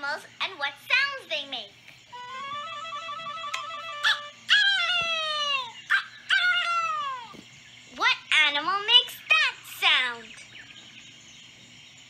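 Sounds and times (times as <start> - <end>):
cartoon rooster crowing: 2.2 - 7.3.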